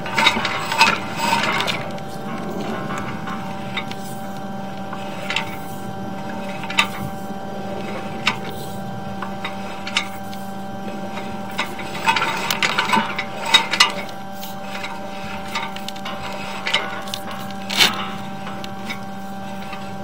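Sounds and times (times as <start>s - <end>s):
cable clicks and knocks: 0.0s - 20.0s
electrical hum: 0.0s - 20.0s
rattling and scraping: 0.0s - 20.0s.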